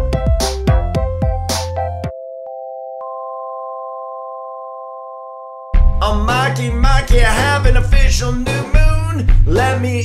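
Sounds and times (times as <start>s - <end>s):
sustained electronic chord: 1.9s - 6.2s
loud music with singing: 5.9s - 10.0s.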